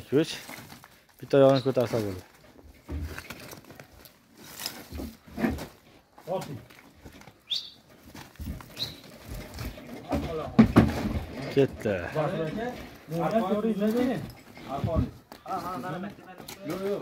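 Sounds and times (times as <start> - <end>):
hooves scraping on gravel: 0.0 - 10.6, 11.2 - 17.0
hooves knocking on truck floor: 7.8 - 15.4.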